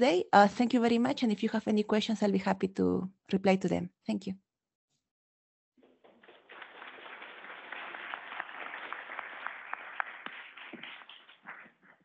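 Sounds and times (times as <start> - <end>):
audience applauding: 6.1 - 11.7.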